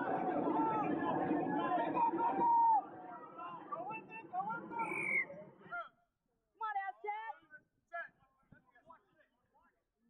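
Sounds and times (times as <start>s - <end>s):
overlapping voices chatter: 0.0s - 4.0s.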